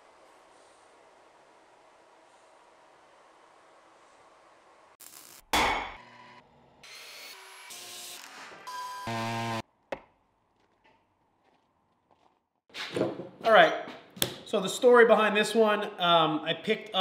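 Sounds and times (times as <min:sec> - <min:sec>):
brief tool and machine sounds: 0:05.0 - 0:09.6.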